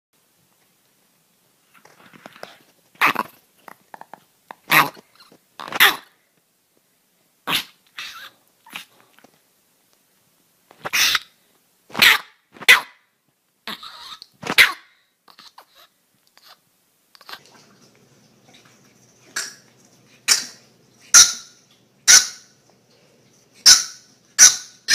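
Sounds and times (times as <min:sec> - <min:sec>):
small dog barking: 0:11.9 - 0:13.0, 0:13.8 - 0:14.9.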